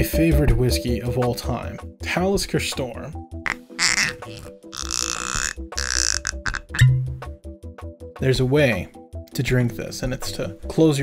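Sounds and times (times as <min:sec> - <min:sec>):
person sipping: 0:03.5 - 0:06.9
background music with steady beat: 0:05.4 - 0:11.0.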